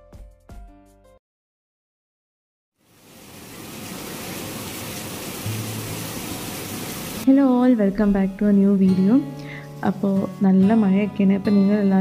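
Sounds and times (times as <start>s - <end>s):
heavy rain: 2.8s - 7.3s
music with melodic voice: 7.3s - 12.0s.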